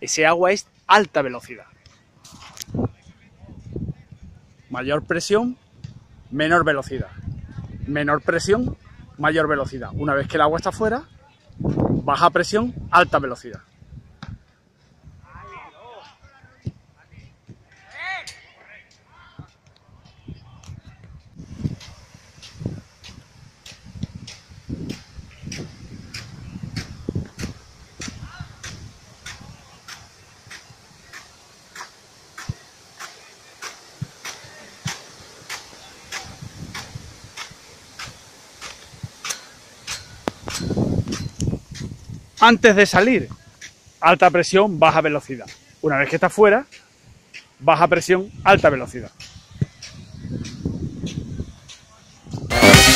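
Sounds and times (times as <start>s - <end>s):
water jet hissing: 21.4s - 51.8s
sprinkler arm ticking: 21.6s - 48.0s.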